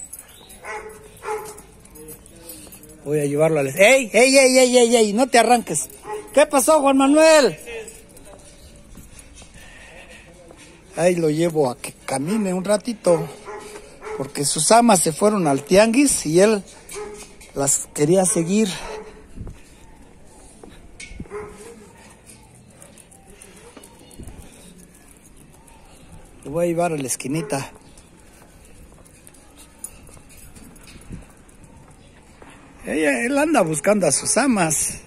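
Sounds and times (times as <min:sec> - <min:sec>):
footsteps on concrete: 0:00.0 - 0:35.0
quiet street background noise: 0:00.0 - 0:35.0.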